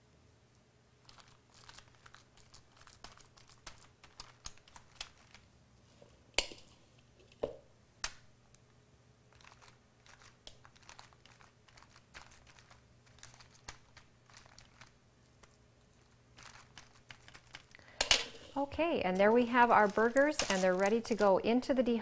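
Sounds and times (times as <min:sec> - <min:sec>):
parchment paper crinkling: 0:01.0 - 0:05.5, 0:09.3 - 0:21.5.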